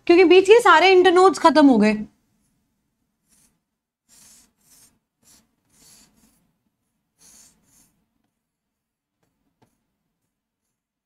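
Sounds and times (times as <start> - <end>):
marker pen scratching on board: 3.2 - 8.4, 9.5 - 11.0.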